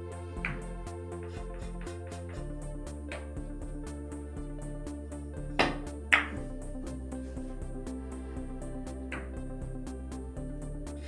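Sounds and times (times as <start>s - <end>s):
electronic music with steady beat: 0.0s - 11.0s.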